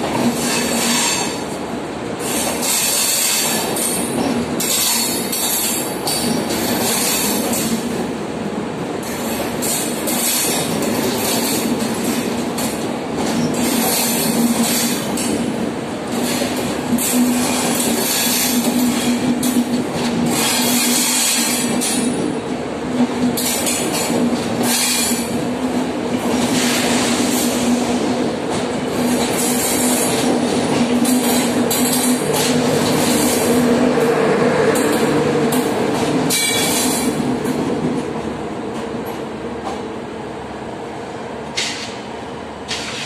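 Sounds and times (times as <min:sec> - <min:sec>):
train coaches rumbling past: 0:00.0 - 0:43.0
wheels clattering over rail joints: 0:09.0 - 0:22.3.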